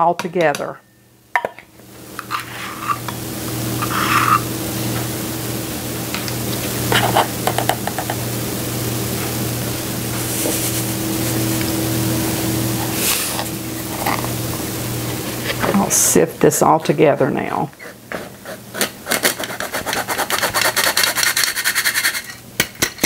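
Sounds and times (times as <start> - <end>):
low hum and hiss: 0.0 - 20.2.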